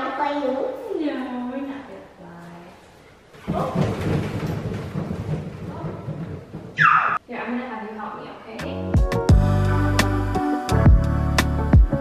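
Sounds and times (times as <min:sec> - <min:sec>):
high sound falling in pitch: 0:06.8 - 0:07.2
music with low drum pulses: 0:09.0 - 0:10.2.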